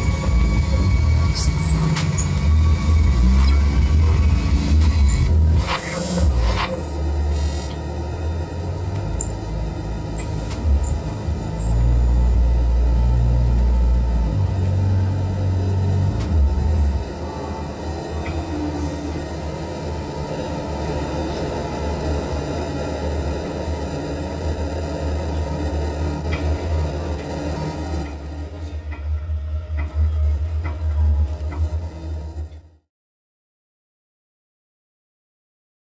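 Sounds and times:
low bass drone: 0.0 - 32.8.

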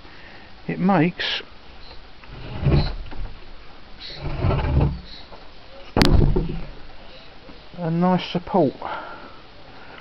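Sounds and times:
sharp knock: 6.0 - 6.7
dull low thumps: 6.0 - 6.9.

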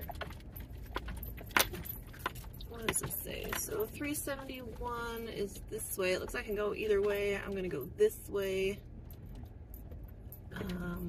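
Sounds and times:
loose items clinking and rattling: 0.0 - 5.6
vehicle engine and tyres rumbling: 0.0 - 11.0.

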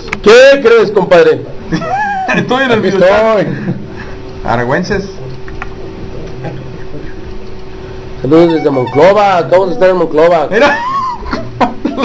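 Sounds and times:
microphone hum and hiss: 0.0 - 12.0.

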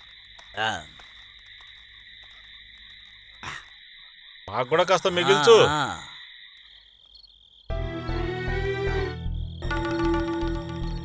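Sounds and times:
night chorus of animals chirring: 0.0 - 11.0.

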